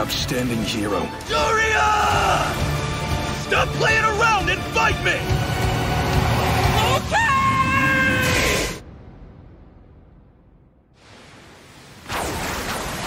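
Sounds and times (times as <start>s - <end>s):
person screaming: 6.8s - 8.8s.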